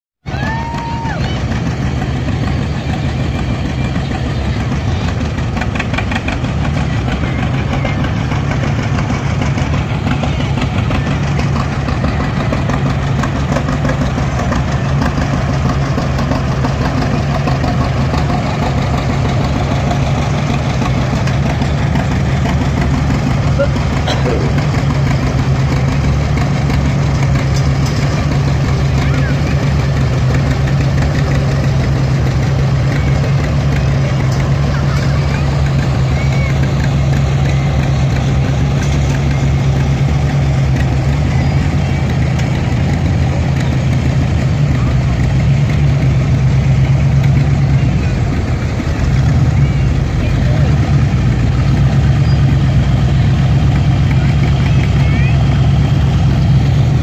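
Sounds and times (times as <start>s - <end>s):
onlookers' voices: 0.2s - 57.0s
tractor engines droning: 0.2s - 57.0s.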